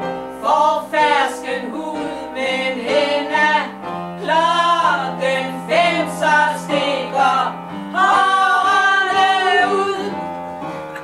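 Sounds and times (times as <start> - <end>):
women singing a cabaret song: 0.4 - 10.3.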